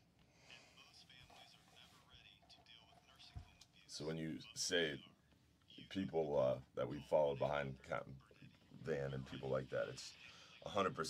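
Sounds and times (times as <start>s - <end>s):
faint voice sounds: 0.0s - 6.1s.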